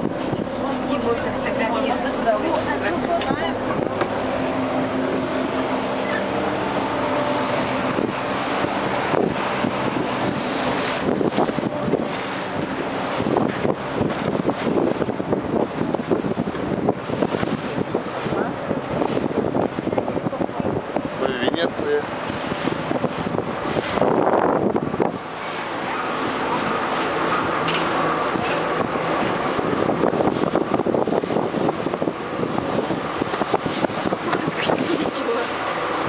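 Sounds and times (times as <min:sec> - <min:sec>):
motorboat engine running: 0:00.0 - 0:36.0
water rushing past hull: 0:00.0 - 0:36.0
wind buffeting microphone: 0:00.0 - 0:36.0.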